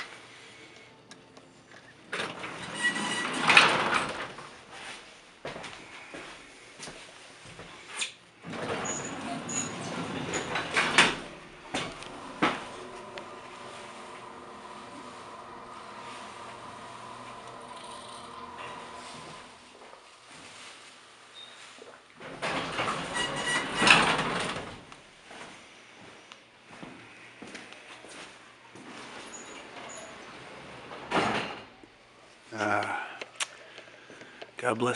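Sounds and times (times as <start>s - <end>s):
sliding doors rumbling: 2.1s - 4.7s, 8.4s - 21.2s, 22.2s - 25.1s, 28.9s - 31.8s
elevator machinery humming: 8.4s - 20.5s.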